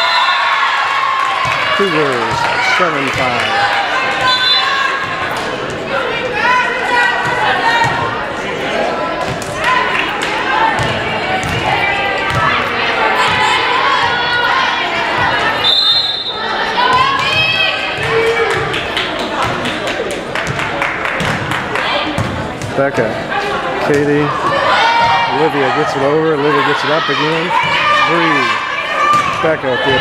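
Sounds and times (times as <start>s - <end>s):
referee's whistle: 0.0s - 0.5s, 4.2s - 4.8s, 15.6s - 16.5s
people calling out and chattering: 0.0s - 30.0s.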